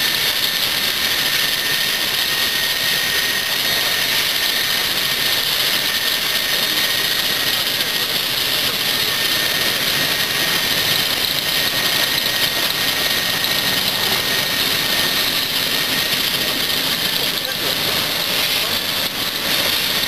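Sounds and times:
steady rushing hiss: 0.0 - 20.0.

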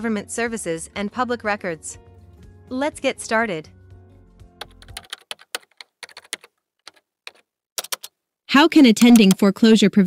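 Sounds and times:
background music: 0.0 - 5.7
keyboard typing clicks: 4.6 - 8.1, 9.0 - 9.5.

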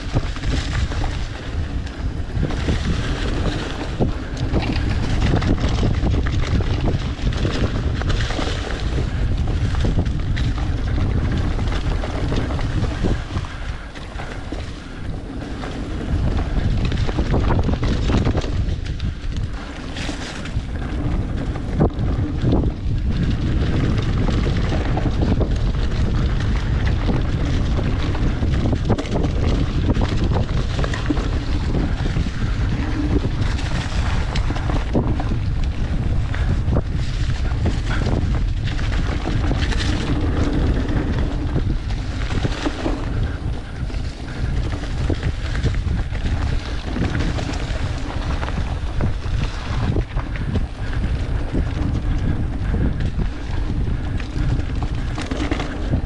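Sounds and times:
bike clicks and rattles: 0.0 - 56.0
tyres rumbling on dirt: 0.0 - 56.0
wind buffeting microphone: 0.0 - 56.0.

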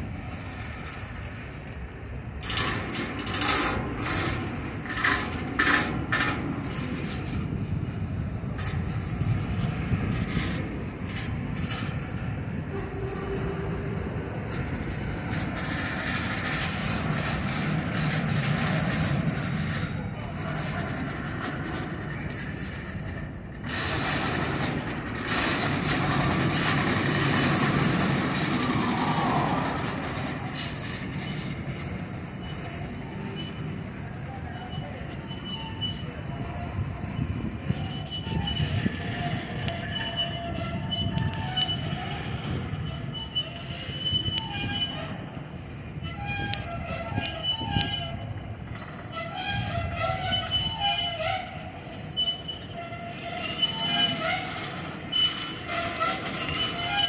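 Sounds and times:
freight cars rumbling on rails: 0.0 - 57.0
wheel squeals: 0.4 - 57.0.

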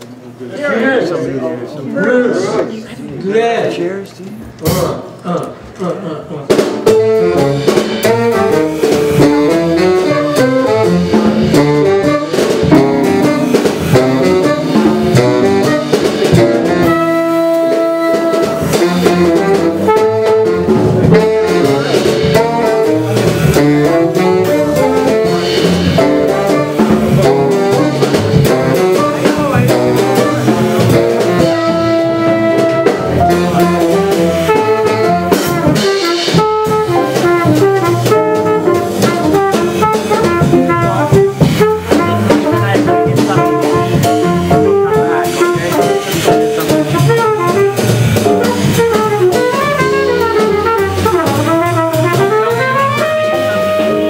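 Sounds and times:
drum kit: 4.4 - 54.0
upright bass: 6.4 - 54.0
trumpet: 6.8 - 54.0
saxophone: 6.9 - 54.0.

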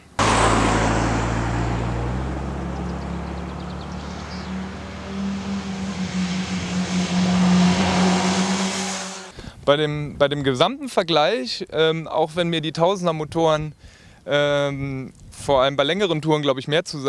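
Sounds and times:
motorcycle engine running: 0.0 - 9.3.

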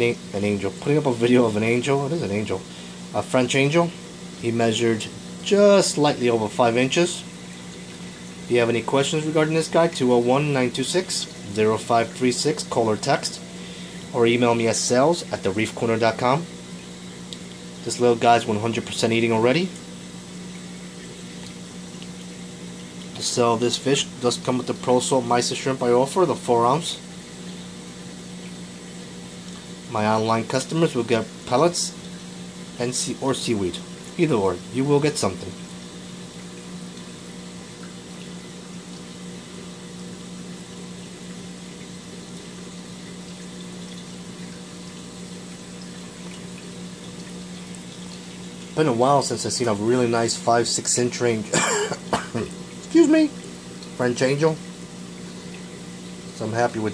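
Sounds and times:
aquarium pump humming: 0.0 - 56.9
flowing water hiss: 0.0 - 56.9
hiss of moving water: 13.1 - 14.2.

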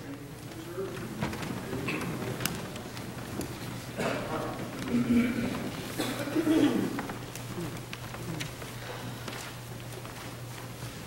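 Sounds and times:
low murmur of voices: 0.0 - 10.3.

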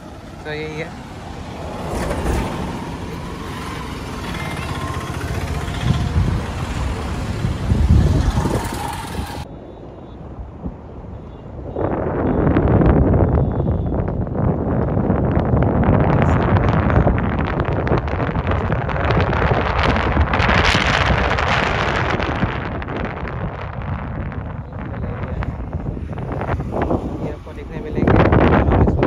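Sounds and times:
motorbike passing: 0.0 - 9.6, 15.8 - 29.0
cars passing: 0.0 - 13.3, 14.1 - 29.0
wind buffeting microphone: 0.0 - 29.0.

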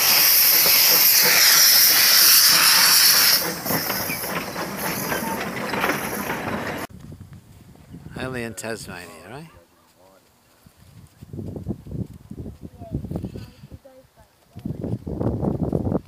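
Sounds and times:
steam locomotive hissing: 0.0 - 6.9.

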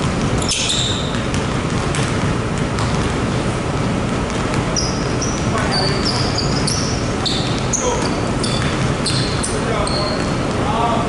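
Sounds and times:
basketballs bouncing on hardwood: 0.0 - 10.7
sneaker squeaks: 0.0 - 10.7.

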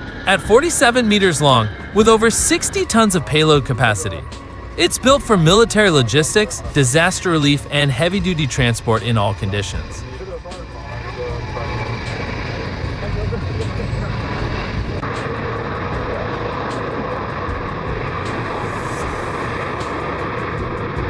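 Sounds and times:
jet engines rumbling and whining: 0.0 - 21.0.

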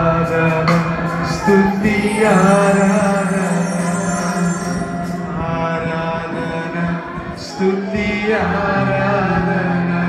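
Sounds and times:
man singing into microphone: 0.0 - 10.0
sustained keyboard chords: 0.0 - 10.0.

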